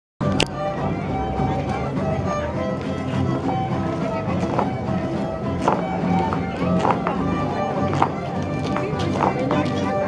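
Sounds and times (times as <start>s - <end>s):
folk dance music: 0.2s - 10.0s
shoes tapping on stone paving: 1.6s - 10.0s.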